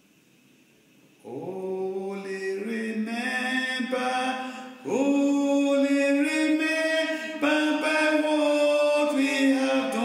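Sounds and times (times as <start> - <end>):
chant-like singing: 1.2 - 10.0.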